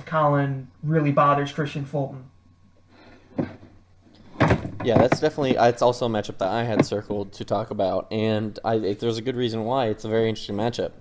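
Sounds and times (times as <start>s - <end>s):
faint background hiss: 0.0s - 11.0s
sudden thump: 4.3s - 5.3s
man speaking: 4.8s - 11.0s.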